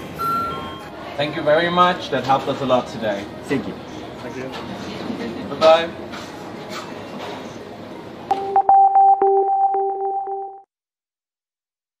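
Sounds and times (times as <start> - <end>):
station background noise: 0.0 - 10.1
synthesizer music sting: 8.3 - 10.6.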